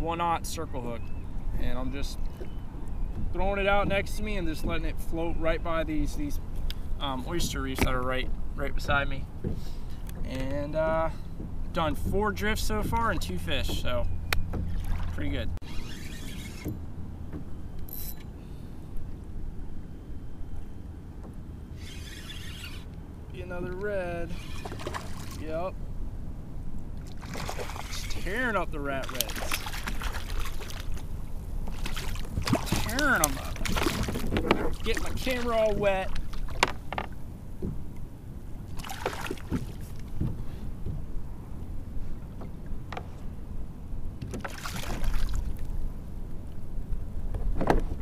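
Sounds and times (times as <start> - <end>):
water: 0.0 - 48.0
wind rumbling on microphone: 0.0 - 48.0
fishing reel whirring: 15.6 - 16.8, 21.7 - 22.9, 24.2 - 24.9
wind on microphone: 29.3 - 42.6.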